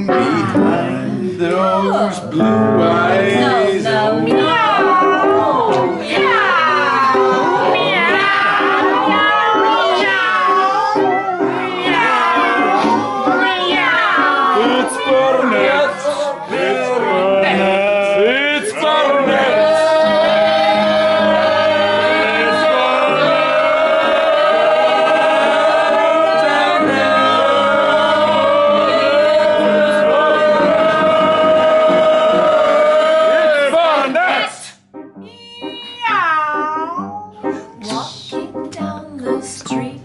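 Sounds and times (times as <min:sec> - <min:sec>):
group singing wordless chorus: 0:00.0 - 0:34.8
piano chords: 0:00.0 - 0:40.0.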